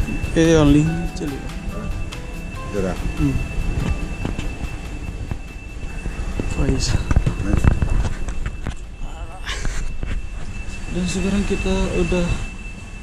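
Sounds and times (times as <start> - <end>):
passengers talking: 0.0 - 12.6
low train rumble: 0.0 - 13.0
thin high tone: 0.0 - 13.0.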